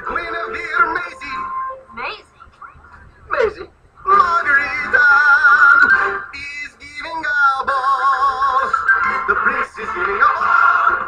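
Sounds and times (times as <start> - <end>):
person singing with vibrato: 0.0 - 1.9, 4.1 - 11.0
musical accompaniment: 0.0 - 2.1, 4.1 - 6.6, 8.2 - 11.0.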